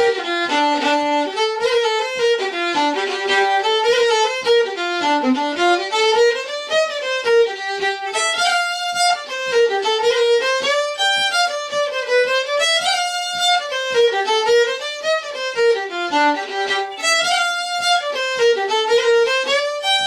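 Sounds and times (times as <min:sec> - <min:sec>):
fiddle playing a jig: 0:00.0 - 0:20.0.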